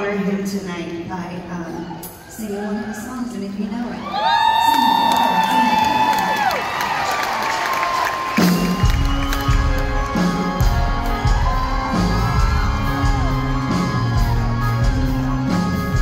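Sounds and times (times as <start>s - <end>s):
audience cheering and whooping: 4.0s - 16.0s
live country band playing: 8.0s - 16.0s.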